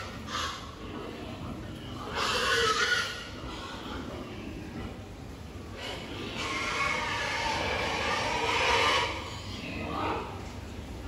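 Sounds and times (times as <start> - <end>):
pigs squealing: 0.0 - 4.6, 5.7 - 10.4.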